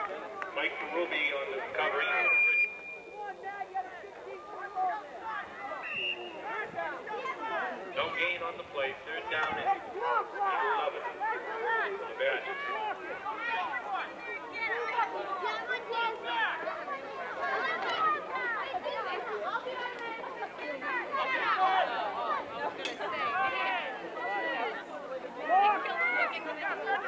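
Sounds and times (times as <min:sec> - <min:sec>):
indistinct chatter of many voices: 0:00.0 - 0:27.0.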